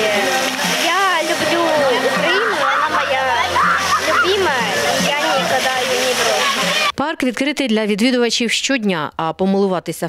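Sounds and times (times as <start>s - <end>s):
fountain water pattering on paving: 0.0s - 6.9s
children calling and squealing: 1.2s - 7.0s.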